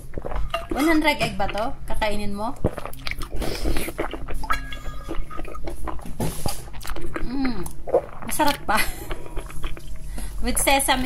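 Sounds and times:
chewing and lip smacks: 0:02.6 - 0:10.4.

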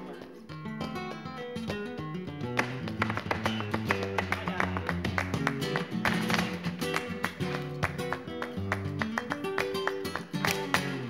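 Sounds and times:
flamenco guitar: 0:00.0 - 0:11.0
sharp handclaps: 0:02.4 - 0:11.0.

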